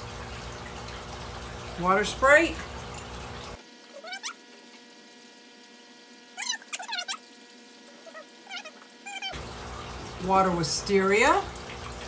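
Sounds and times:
pet animal high rising cries: 0:03.9 - 0:04.4, 0:06.4 - 0:07.2, 0:07.9 - 0:09.4.

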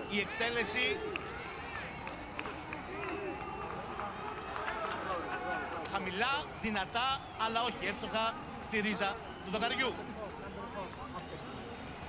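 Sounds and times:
players calling out on pitch: 0:00.0 - 0:12.0.

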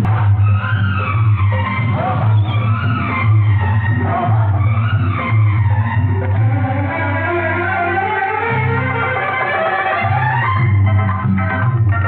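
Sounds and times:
music with strong bass: 0:00.0 - 0:12.0.

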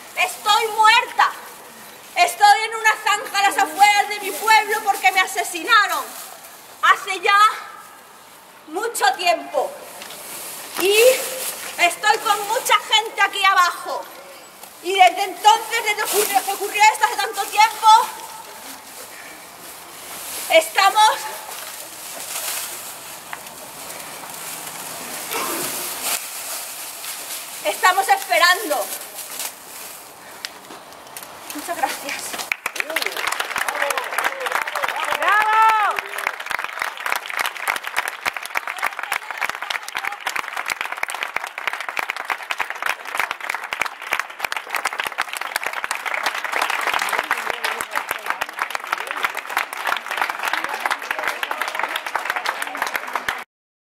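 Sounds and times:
audience applauding: 0:32.5 - 0:53.5.

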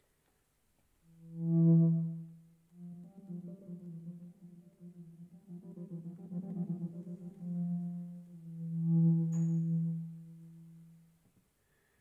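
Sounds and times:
band holding low note: 0:01.1 - 0:10.8.

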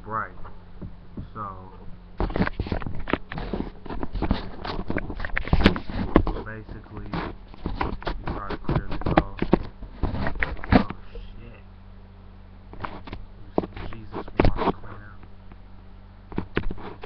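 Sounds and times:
handling knocks taps and scrapes: 0:00.4 - 0:11.3, 0:12.7 - 0:15.6, 0:16.3 - 0:17.0.

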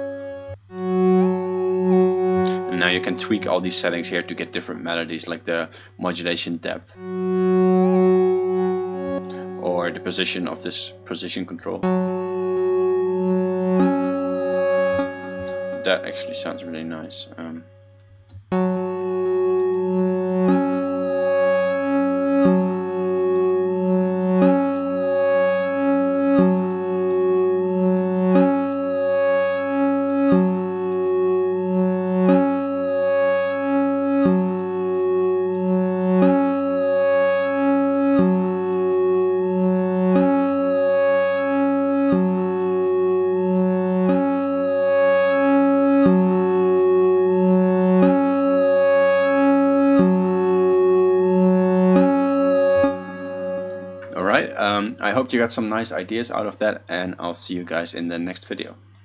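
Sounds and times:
low synth drone: 0:00.0 - 0:05.5, 0:06.9 - 0:56.1
synthesizer phrase: 0:00.0 - 0:56.3.

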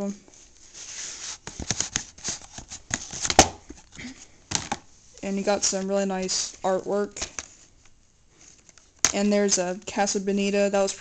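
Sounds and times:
cardboard scraping rustles: 0:00.4 - 0:03.4.

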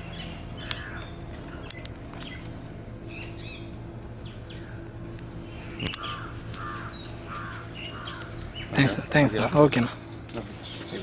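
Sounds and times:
small bird chirping: 0:00.0 - 0:09.0
crow cawing: 0:00.6 - 0:01.6, 0:05.6 - 0:08.7.

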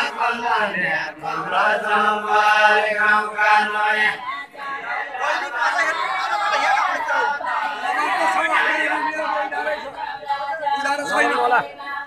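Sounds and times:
group singing in chorus: 0:00.0 - 0:12.0.

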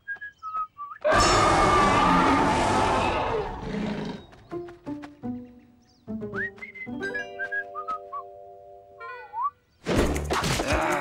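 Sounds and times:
light background music: 0:04.3 - 0:09.1.

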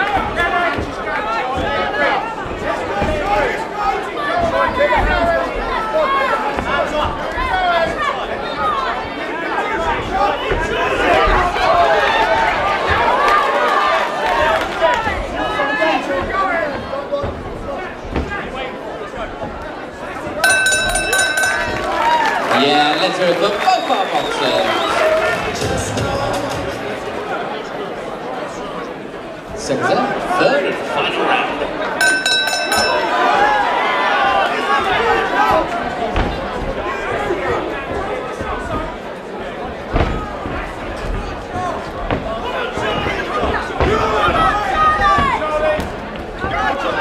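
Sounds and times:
crowd voices: 0:00.0 - 0:47.0
boxing ring bell ringing: 0:20.4 - 0:22.2, 0:32.0 - 0:33.5.

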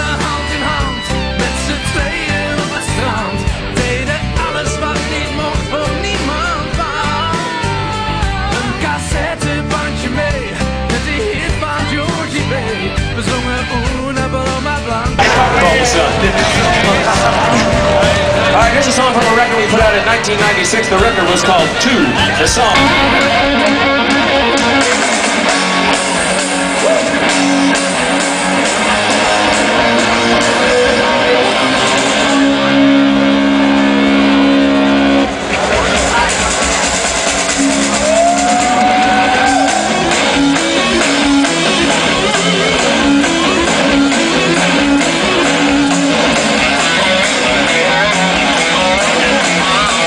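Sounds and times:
rock band electric guitars: 0:00.0 - 0:50.0.

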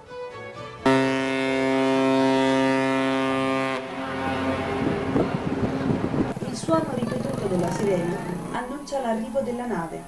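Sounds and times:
ship's horn blast: 0:00.8 - 0:06.4.

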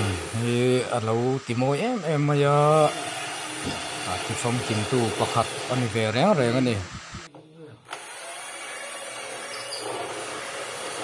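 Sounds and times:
power tool whirring: 0:00.0 - 0:11.0.

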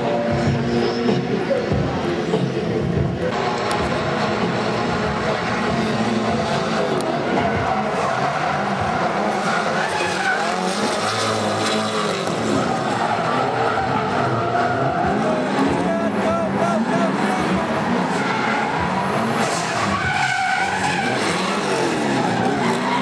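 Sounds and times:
car engines revving: 0:00.0 - 0:23.0
tyres screeching: 0:03.4 - 0:23.0.

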